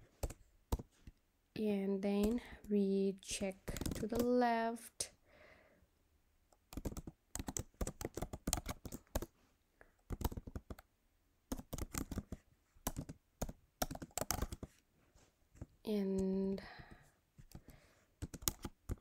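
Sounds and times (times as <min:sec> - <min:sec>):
computer keyboard typing: 0:00.1 - 0:00.9, 0:02.2 - 0:02.7, 0:03.4 - 0:04.4, 0:06.5 - 0:09.3, 0:10.0 - 0:10.9, 0:11.5 - 0:14.8, 0:16.2 - 0:19.0.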